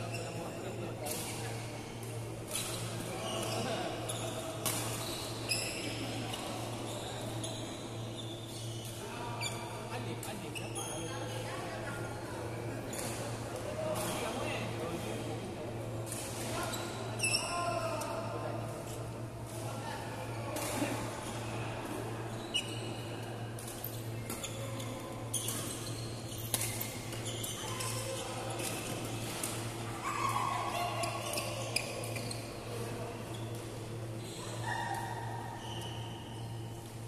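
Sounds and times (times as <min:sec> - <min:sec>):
faint voices in a hall: 0:00.0 - 0:37.0
sports shoe squeaking on court floor: 0:02.8 - 0:06.0, 0:06.9 - 0:09.6, 0:22.3 - 0:23.0, 0:24.3 - 0:28.7, 0:31.2 - 0:32.6, 0:33.3 - 0:34.8, 0:35.6 - 0:36.7.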